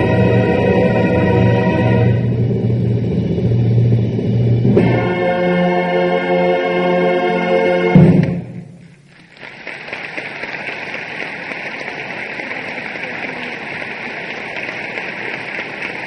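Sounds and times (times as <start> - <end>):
loud percussion stroke: 7.9 - 8.9
audience applause: 8.2 - 16.0.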